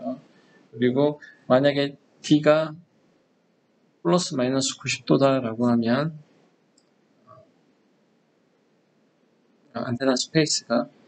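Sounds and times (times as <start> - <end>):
faint low vocal sound: 0.0 - 0.2, 0.8 - 2.8
man talking: 0.0 - 0.2, 0.8 - 2.8, 4.1 - 6.2, 9.8 - 10.9.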